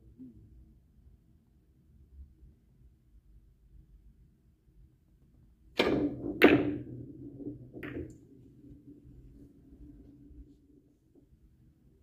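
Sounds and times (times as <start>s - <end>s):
billiard balls clicking together: 5.8s - 8.8s
cue striking ball: 5.8s - 10.8s
balls rolling rumble: 5.8s - 11.5s.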